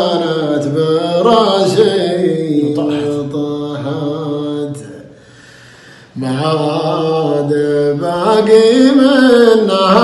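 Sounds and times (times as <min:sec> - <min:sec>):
man chanting sung poem: 0:00.0 - 0:05.0.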